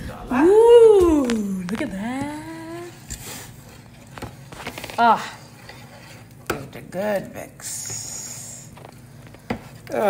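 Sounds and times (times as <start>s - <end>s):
spoon scraping pot: 2.8s - 6.5s.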